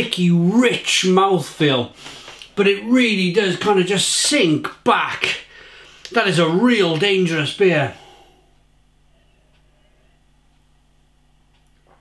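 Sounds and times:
low electrical hum: 0:00.0 - 0:12.0
faint tick: 0:11.5 - 0:11.8.

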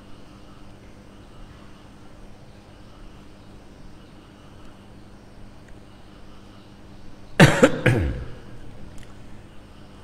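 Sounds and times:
man coughing: 0:07.4 - 0:08.6.

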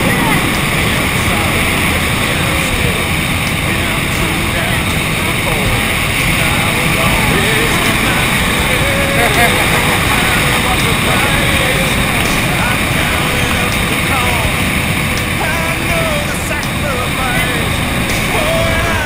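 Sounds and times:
faint voices talking: 0:00.0 - 0:19.0
wind buffeting microphone: 0:00.0 - 0:19.0.

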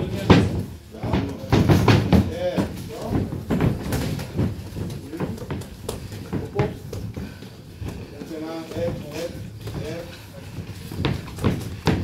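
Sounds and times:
boxing gloves punching: 0:10.6 - 0:12.0.

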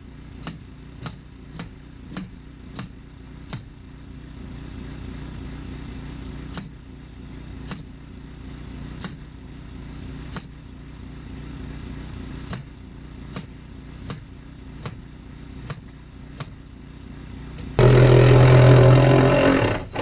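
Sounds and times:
engine humming: 0:00.0 - 0:20.0
loud steady noise: 0:00.0 - 0:20.0.

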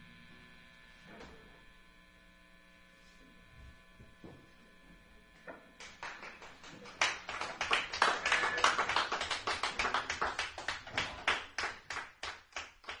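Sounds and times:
small audience applauding: 0:05.8 - 0:13.0.

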